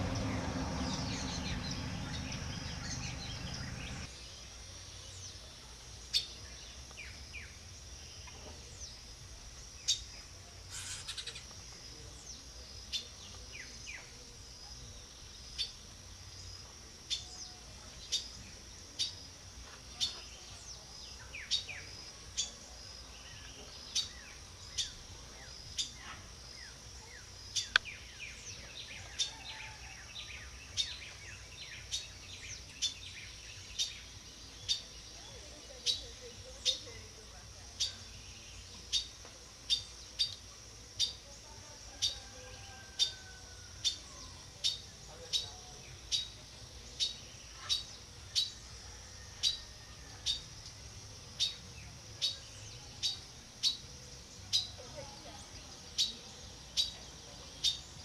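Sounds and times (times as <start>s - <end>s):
high insect drone: 0.0s - 58.0s
small birds calling: 0.0s - 58.0s.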